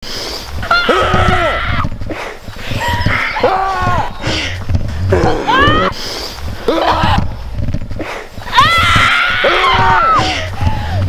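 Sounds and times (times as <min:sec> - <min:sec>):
low thuds of movement: 0:00.1 - 0:11.0.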